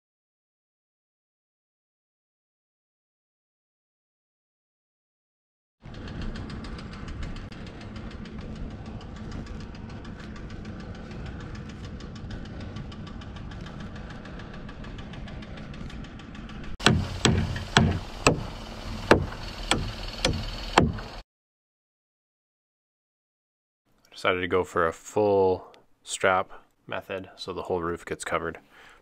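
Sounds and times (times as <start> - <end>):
engine idling: 5.8 - 21.2
hammer striking: 16.8 - 21.2.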